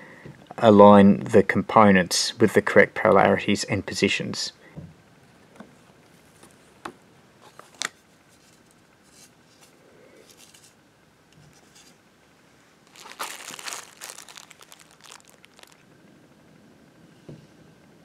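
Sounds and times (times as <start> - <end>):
plastic bags crinkling: 12.8 - 15.8
plastic packaging clicks: 12.9 - 15.8.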